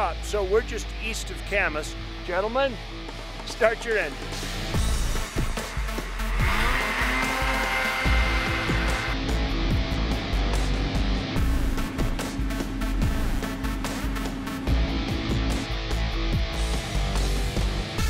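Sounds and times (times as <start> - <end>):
guitar music: 4.2 - 18.0
rising engine whine: 4.8 - 17.7
snowmobile engines revving: 5.6 - 9.2.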